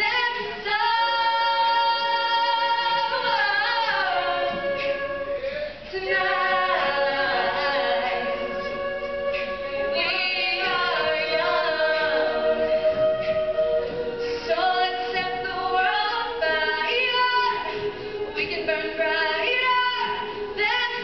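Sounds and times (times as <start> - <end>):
women singing a cappella: 0.0 - 21.0.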